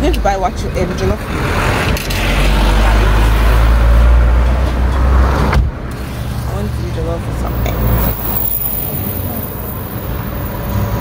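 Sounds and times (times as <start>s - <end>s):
vehicle rumble and road noise: 0.0s - 11.0s.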